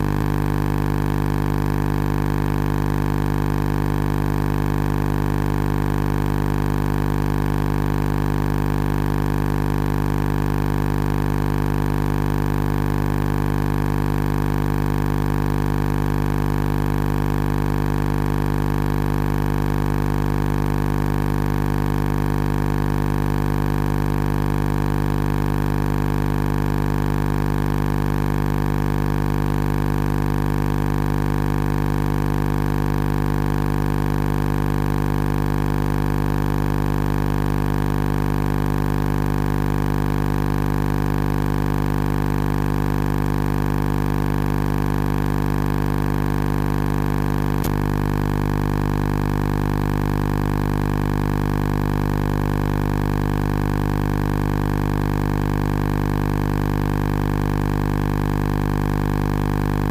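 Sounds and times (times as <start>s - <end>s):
loud steady hum: 0.0s - 0.8s, 46.8s - 49.6s, 59.5s - 59.9s.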